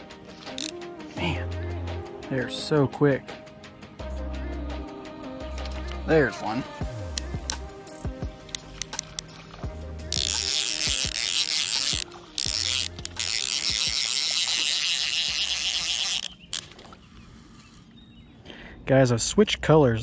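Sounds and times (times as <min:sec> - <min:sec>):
background music: 0:00.0 - 0:16.3
fishing reel ratcheting buzz: 0:00.3 - 0:00.9, 0:07.1 - 0:16.9.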